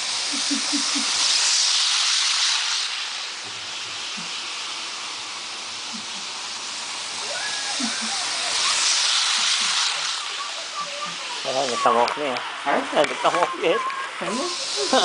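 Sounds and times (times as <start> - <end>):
model train whirring on track: 0.0 - 15.0.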